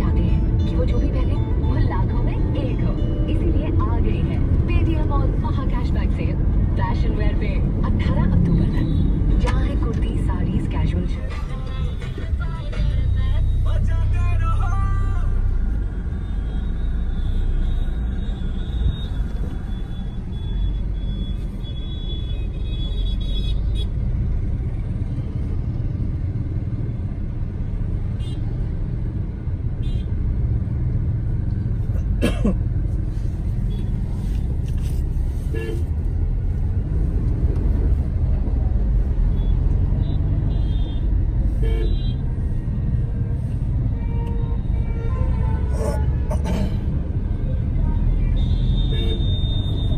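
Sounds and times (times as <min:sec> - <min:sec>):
car driving rumble: 0:00.0 - 0:49.9
car horns honking: 0:47.9 - 0:49.9.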